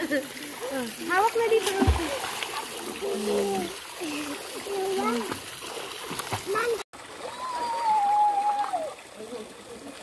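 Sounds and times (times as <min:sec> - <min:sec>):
pool water splashing: 0:00.0 - 0:10.0.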